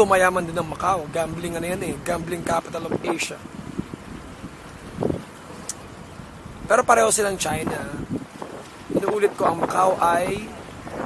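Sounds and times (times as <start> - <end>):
wind on microphone: 0.0 - 11.0
faint click: 5.6 - 5.8.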